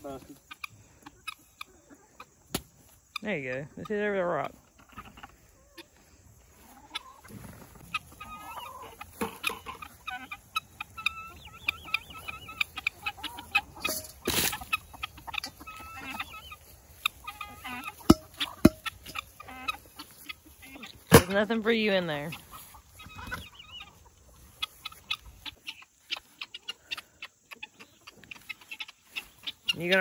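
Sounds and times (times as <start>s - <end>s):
hens clucking: 0.0s - 30.0s.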